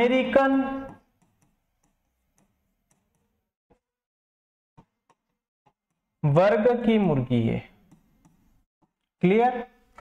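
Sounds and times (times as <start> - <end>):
marker writing on whiteboard: 0.7 - 3.8, 7.8 - 9.0.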